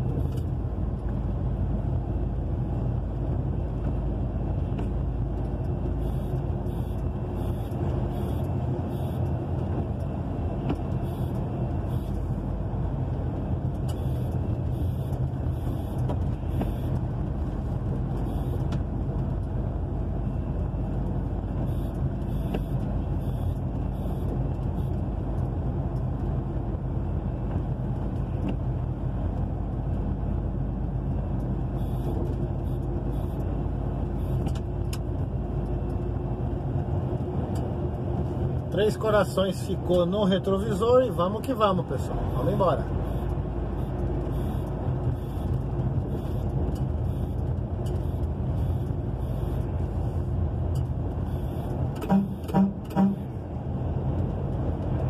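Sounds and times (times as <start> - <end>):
truck engine hum: 0.0 - 55.0.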